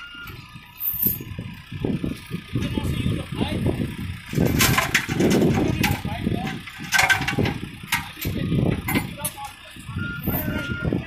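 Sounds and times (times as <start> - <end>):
diesel engine running: 0.0 - 11.0
people's voices: 2.2 - 11.0.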